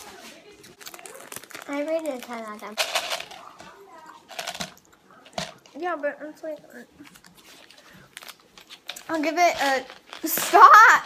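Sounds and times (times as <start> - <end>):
wrapper crinkling: 0.0 - 5.7, 7.2 - 11.0.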